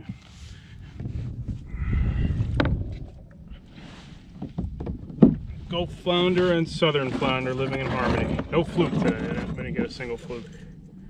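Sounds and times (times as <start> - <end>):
fish knocking on plastic kayak: 2.5 - 3.4, 4.4 - 5.6.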